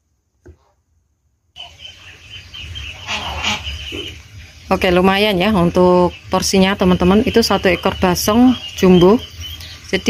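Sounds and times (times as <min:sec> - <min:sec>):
fowl calling: 0:01.6 - 0:04.3.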